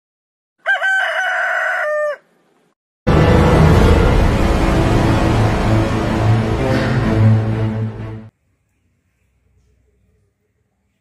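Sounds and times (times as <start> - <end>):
rooster crowing: 0.6 - 2.4.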